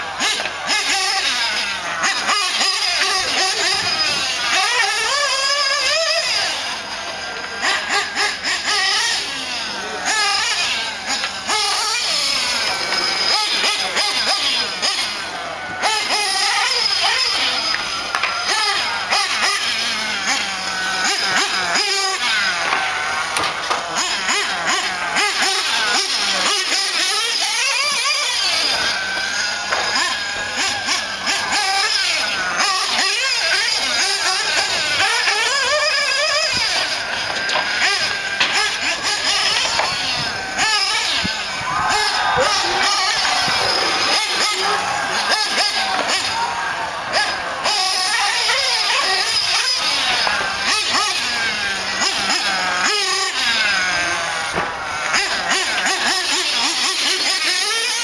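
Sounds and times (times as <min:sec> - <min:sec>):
rc nitro engine whine: 0:00.0 - 0:58.0.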